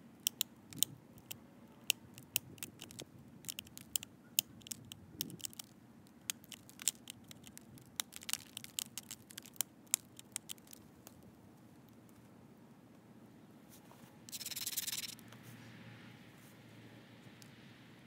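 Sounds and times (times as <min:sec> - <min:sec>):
sharp clicks of stone flaking: 0:02.2 - 0:11.2, 0:14.3 - 0:15.2.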